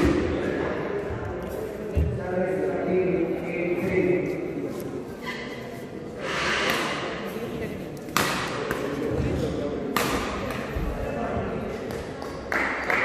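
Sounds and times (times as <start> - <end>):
crowd chattering in large hall: 0.0 - 13.0
racket striking shuttlecock: 8.1 - 9.0, 9.9 - 10.7.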